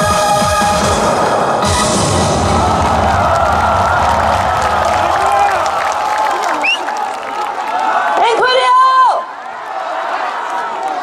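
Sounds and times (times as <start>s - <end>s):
crowd cheering and clapping: 1.0s - 11.0s
rising whoop: 1.9s - 8.0s.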